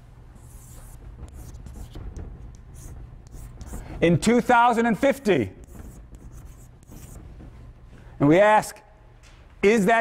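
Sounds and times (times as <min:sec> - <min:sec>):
chalk scratching on blackboard: 0:00.4 - 0:07.4.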